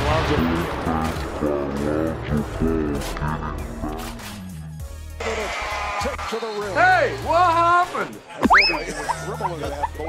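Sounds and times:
background music with bass line: 0.1s - 10.0s
voices: 6.1s - 10.0s.

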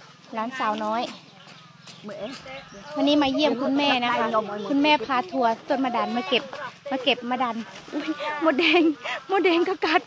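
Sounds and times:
woman speaking: 0.3s - 1.2s, 2.0s - 10.0s.

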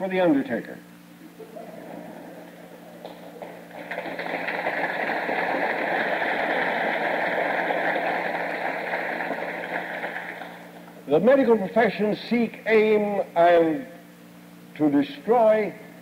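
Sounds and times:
steady low hum: 0.0s - 16.0s
audience applause: 1.7s - 10.8s.

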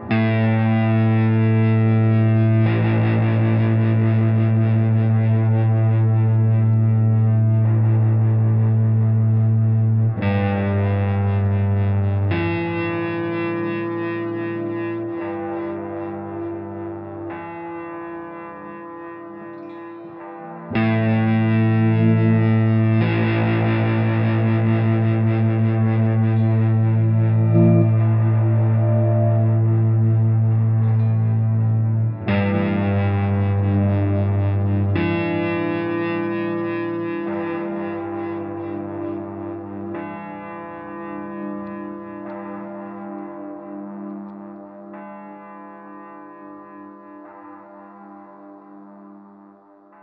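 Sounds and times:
electric guitar chords: 0.0s - 50.0s.

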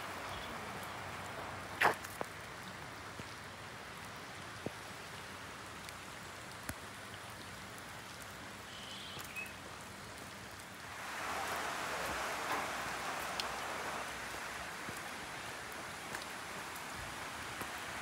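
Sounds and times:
heavy rain pouring: 0.0s - 18.0s.

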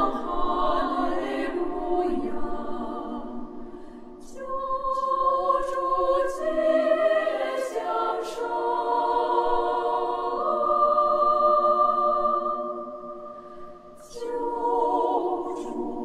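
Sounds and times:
women's choir singing a hymn: 0.0s - 16.0s.

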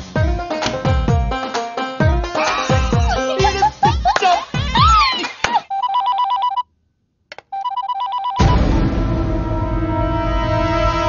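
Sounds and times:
music: 0.0s - 5.4s
electronic telephone ringing: 5.7s - 6.6s, 7.5s - 8.6s.

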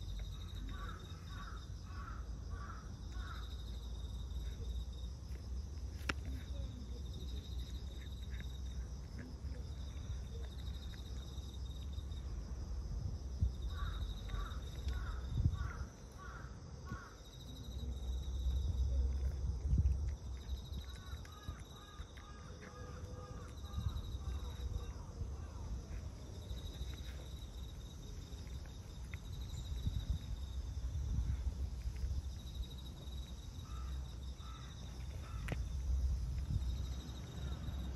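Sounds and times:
crickets chirring: 0.0s - 37.9s
high pulsing insect trill: 0.0s - 37.9s
cat chewing and lapping: 3.1s - 12.5s, 17.2s - 37.9s.

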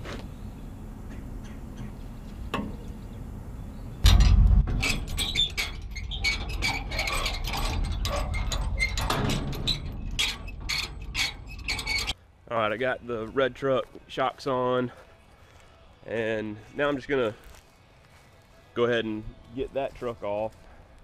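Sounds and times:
loud thump: 4.0s - 5.2s.

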